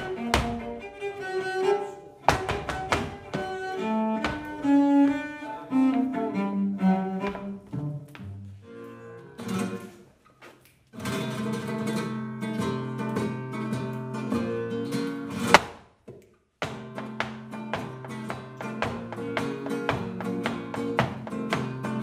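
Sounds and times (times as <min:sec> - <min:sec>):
cello notes: 0:00.0 - 0:10.0
flamenco guitar playing: 0:00.0 - 0:10.2, 0:11.0 - 0:15.8, 0:16.6 - 0:22.0
sharp loud knock: 0:15.5 - 0:15.9.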